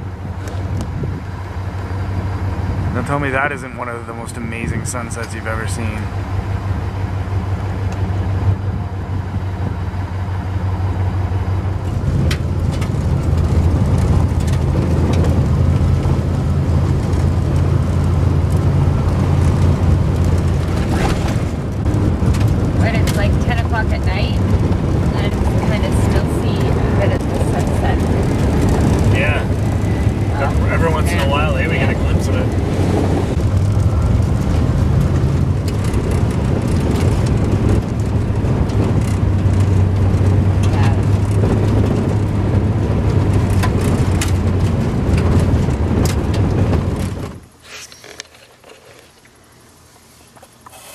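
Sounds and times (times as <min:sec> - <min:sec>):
engine and tyre drone: 0:00.0 - 0:48.2.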